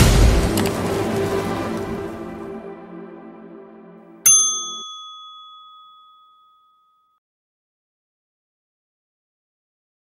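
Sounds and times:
background music: 0:00.0 - 0:05.5
bright bell ding: 0:04.2 - 0:07.2.

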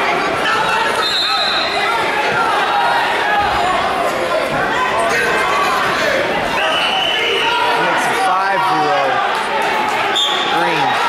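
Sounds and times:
spectators shouting: 0:00.0 - 0:11.0.

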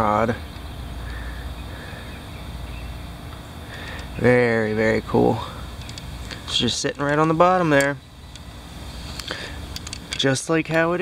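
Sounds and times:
low background rumble: 0:00.0 - 0:11.0
faint handling clicks: 0:05.8 - 0:08.5, 0:09.1 - 0:11.0.

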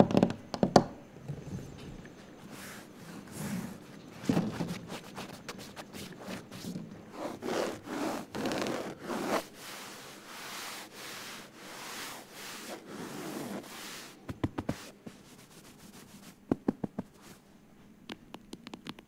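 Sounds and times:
fingernails scratching fabric: 0:02.5 - 0:17.4.

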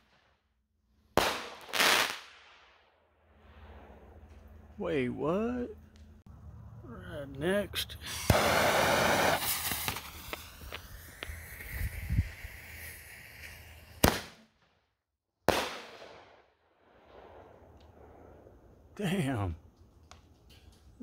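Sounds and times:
firework bangs: 0:01.2 - 0:02.8, 0:08.1 - 0:14.6, 0:15.5 - 0:16.4
torch lighter jet hissing: 0:08.1 - 0:13.6.

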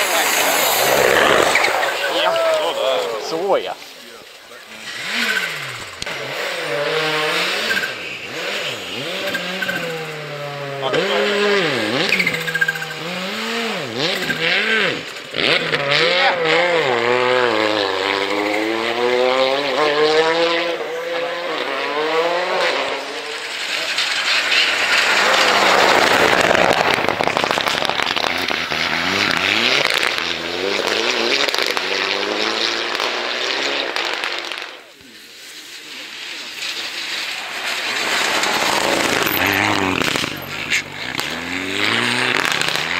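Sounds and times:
loud rushing noise: 0:00.0 - 0:04.1, 0:23.3 - 0:30.2, 0:35.8 - 0:42.9
rally car engine revving: 0:00.0 - 0:42.9.

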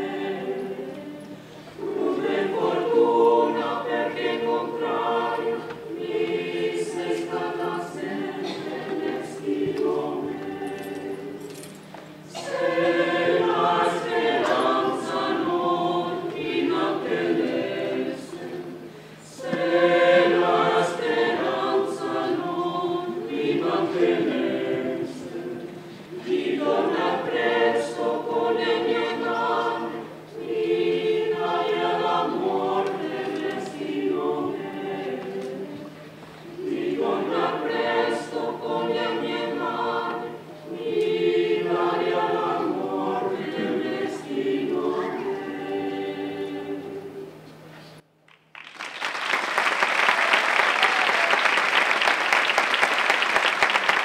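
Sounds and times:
mixed choir singing: 0:00.0 - 0:47.7.

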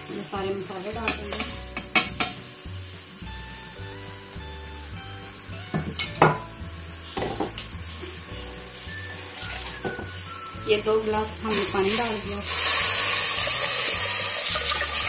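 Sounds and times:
background music with low beat: 0:00.0 - 0:15.0
spices knocking into steel pot: 0:01.1 - 0:02.5, 0:07.2 - 0:07.7.

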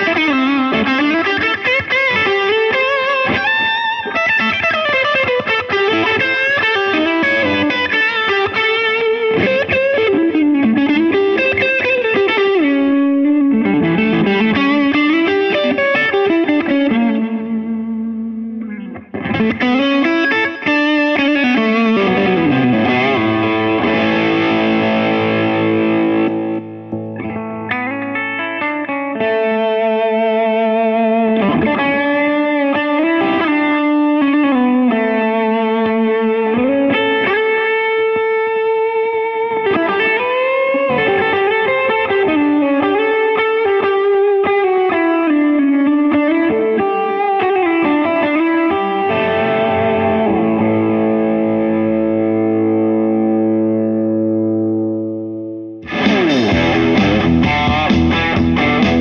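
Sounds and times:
distorted electric guitar: 0:00.0 - 0:59.0
guitar chord ringing: 0:00.0 - 0:59.0.

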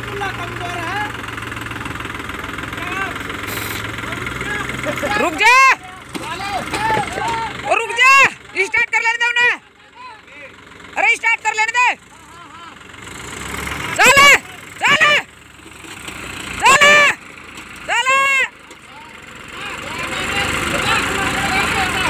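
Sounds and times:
men shouting calls: 0:00.0 - 0:03.3, 0:04.1 - 0:13.0, 0:13.8 - 0:15.4, 0:16.5 - 0:22.0
tractor diesel engines running: 0:00.0 - 0:22.0.

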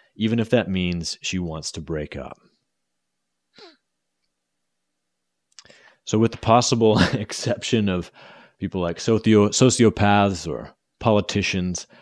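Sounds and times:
man sighing: 0:03.6 - 0:03.8.

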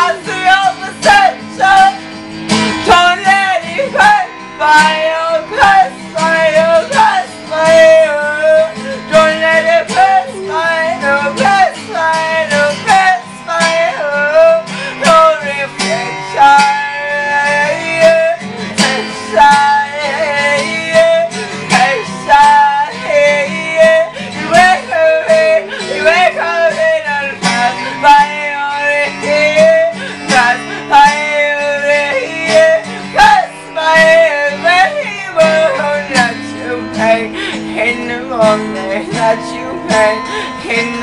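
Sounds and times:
acoustic guitar strumming: 0:00.0 - 0:41.0
person singing: 0:00.0 - 0:41.0.

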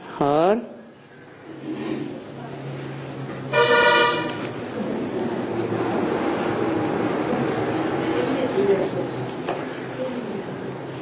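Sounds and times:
vehicle horn blast: 0:03.5 - 0:04.4.

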